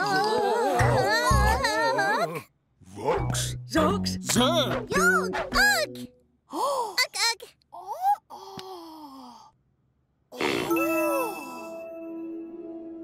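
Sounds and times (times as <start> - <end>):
cartoon voices calling: 0.0 - 2.5
light music: 10.8 - 13.0.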